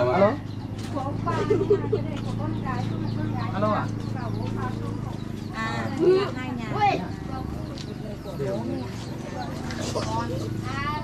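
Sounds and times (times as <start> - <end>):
group of people talking: 0.0 - 11.0.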